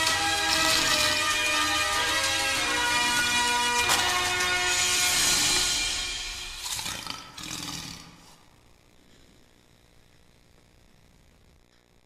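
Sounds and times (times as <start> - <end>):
intro music: 0.0 - 7.2.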